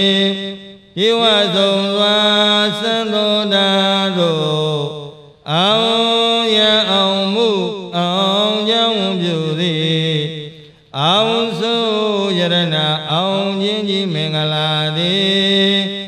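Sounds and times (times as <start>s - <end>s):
man chanting: 0.0s - 16.0s.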